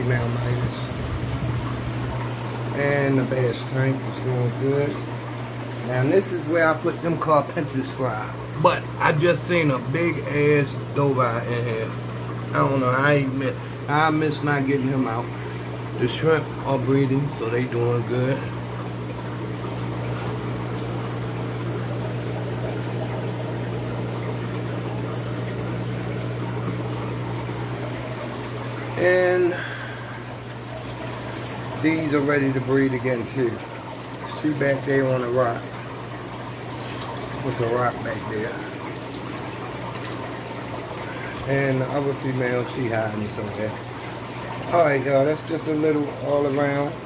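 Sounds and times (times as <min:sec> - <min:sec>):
air pumps humming: 0:00.0 - 0:47.0
water bubbling and trickling: 0:00.0 - 0:47.0.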